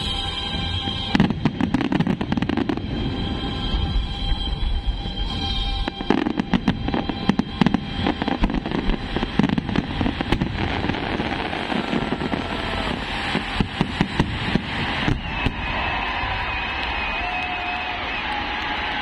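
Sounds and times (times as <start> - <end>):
fireworks bangs and crackles: 0.0 - 19.0.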